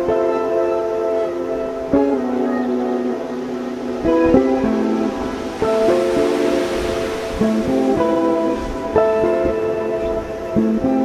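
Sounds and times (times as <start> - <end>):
fingerstyle guitar: 0.0 - 11.0.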